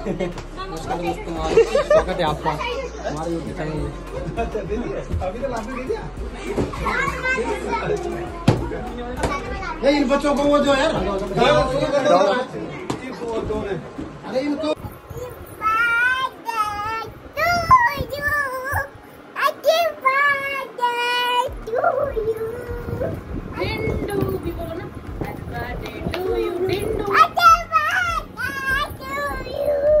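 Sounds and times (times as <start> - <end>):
girl singing in a high voice: 15.1 - 24.5, 26.1 - 30.0
child singing or squealing: 27.1 - 30.0.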